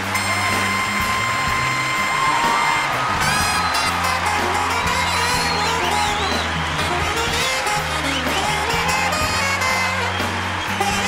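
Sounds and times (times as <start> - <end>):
live band music: 0.0 - 11.0
long held high note: 0.0 - 11.0
steady bass line: 0.0 - 11.0.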